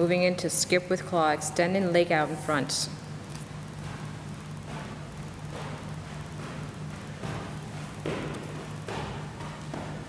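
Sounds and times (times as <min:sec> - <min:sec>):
steady low hum: 0:00.0 - 0:10.0
footfalls skipping on turf: 0:03.7 - 0:10.0.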